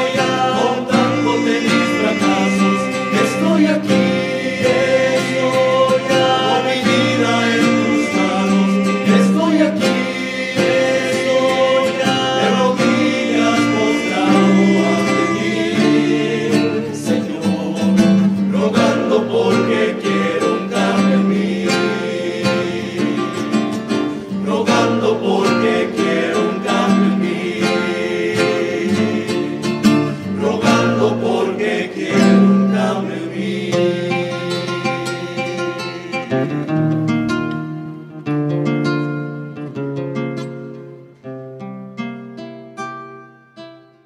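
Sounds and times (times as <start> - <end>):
men singing together: 0.0 - 36.7
double bass: 0.0 - 40.4
acoustic guitars strummed: 0.0 - 44.0.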